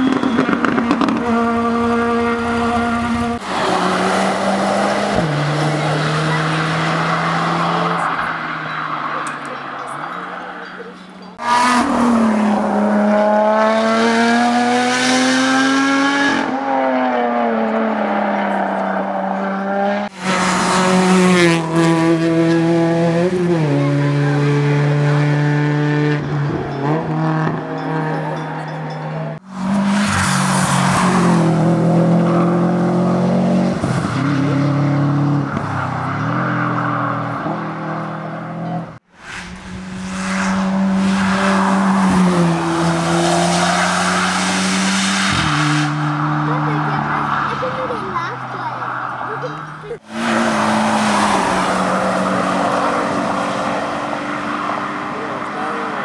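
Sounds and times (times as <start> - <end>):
race car engines revving high: 0.0 - 56.0.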